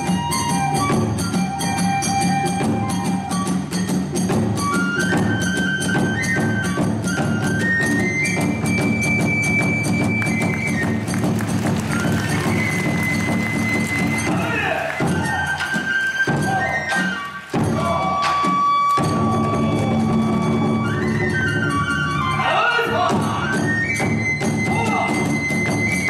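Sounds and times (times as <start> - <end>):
bamboo flute high notes: 0.0 - 26.0
taiko drumming: 0.0 - 26.0.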